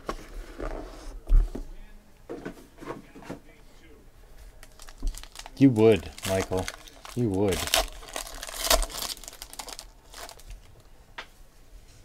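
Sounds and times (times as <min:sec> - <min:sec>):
foil wrapper crinkling: 0:04.6 - 0:10.9.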